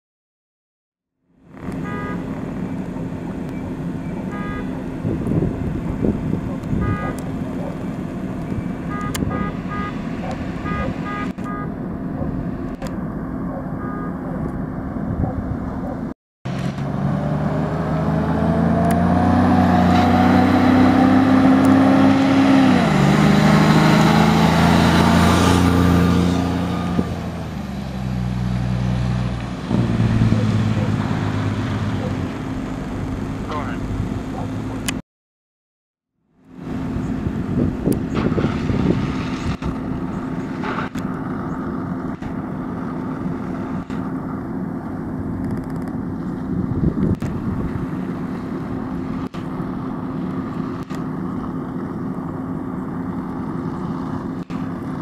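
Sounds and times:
fire truck engine hum: 1.2s - 34.9s, 36.3s - 55.0s
diesel engine accelerating: 1.3s - 35.0s, 36.3s - 55.0s
horn toots: 1.6s - 2.5s, 4.1s - 5.2s, 6.7s - 7.4s, 8.9s - 10.0s, 10.6s - 11.8s, 13.8s - 14.2s.

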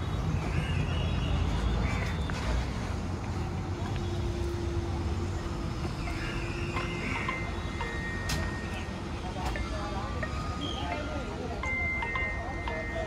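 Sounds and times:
faint distant voices: 3.4s - 13.0s.

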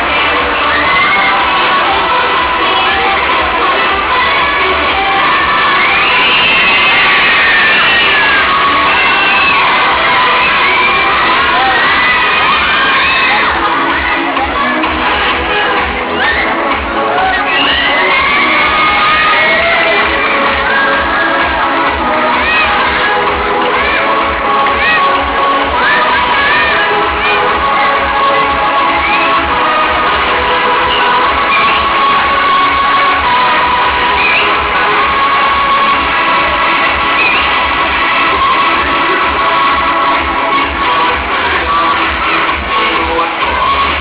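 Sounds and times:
audience cheering and shrieking: 0.0s - 44.0s
loud dance music: 0.0s - 44.0s.

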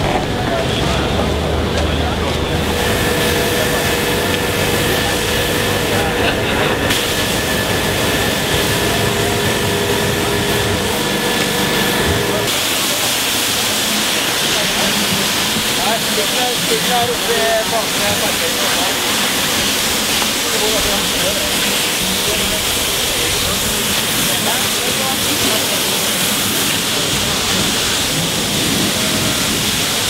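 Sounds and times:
crowd chatter: 0.0s - 30.0s
hose spraying water: 0.0s - 30.0s.

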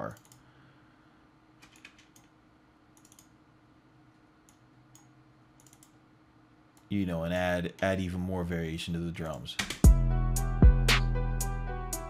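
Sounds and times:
mouse and keyboard clicking: 4.5s - 6.0s.

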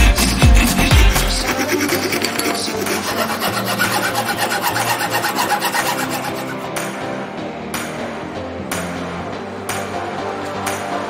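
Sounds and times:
music playing: 0.0s - 11.0s
hand saw cutting wood: 1.1s - 6.6s.

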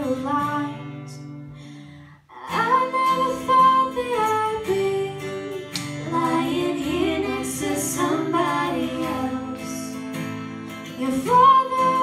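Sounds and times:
women singing: 0.0s - 1.2s, 2.3s - 10.1s, 10.8s - 12.0s
acoustic guitar: 0.0s - 12.0s.

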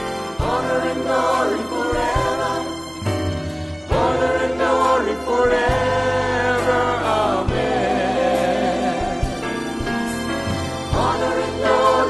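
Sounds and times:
group singing over a band: 0.3s - 2.9s, 3.9s - 9.6s, 10.9s - 12.0s.

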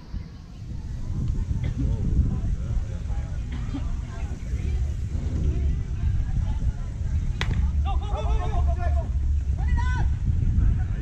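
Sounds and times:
distant people talking: 0.0s - 11.0s
wind on microphone: 0.0s - 11.0s.

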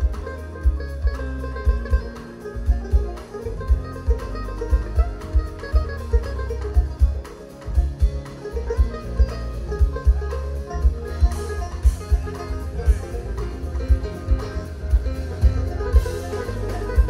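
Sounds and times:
bass: 0.0s - 17.0s
drums with steady beat: 0.0s - 17.0s
fast banjo picking: 0.0s - 17.0s.

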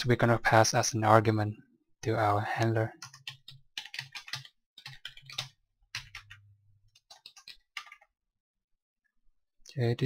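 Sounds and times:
typing on computer keyboard: 3.0s - 8.1s.

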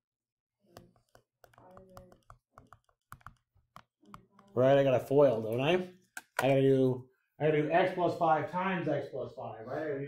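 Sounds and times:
stylus tapping on tablet screen: 0.7s - 4.8s.

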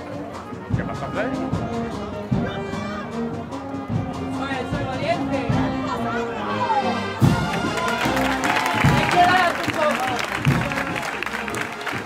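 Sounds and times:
brass band playing a march: 0.0s - 12.0s
held brass notes: 0.0s - 12.0s.

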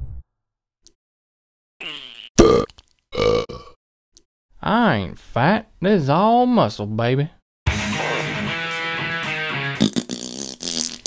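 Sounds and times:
loud rough burps: 1.8s - 3.8s, 9.7s - 11.0s.

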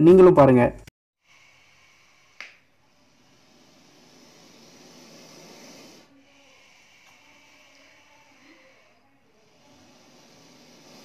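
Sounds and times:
faint hissing: 1.2s - 11.0s.

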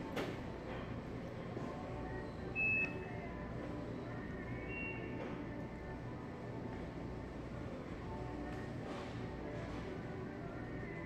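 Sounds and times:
store background noise: 0.0s - 11.0s.

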